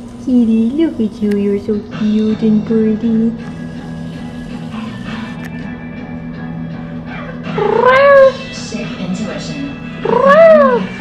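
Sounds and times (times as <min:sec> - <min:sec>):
rock music with guitar: 0:01.9 - 0:11.0
cat meowing: 0:07.6 - 0:08.4, 0:10.0 - 0:11.0.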